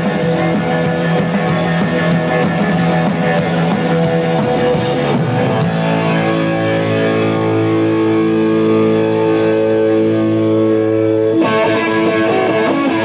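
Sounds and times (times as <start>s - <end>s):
bass guitar: 0.0s - 13.0s
distorted electric guitars: 0.0s - 13.0s.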